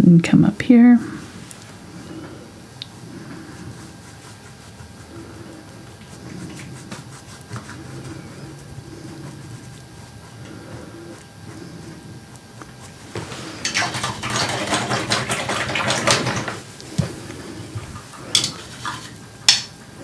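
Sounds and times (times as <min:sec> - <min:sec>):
brush dabbing on canvas: 0:01.1 - 0:13.6.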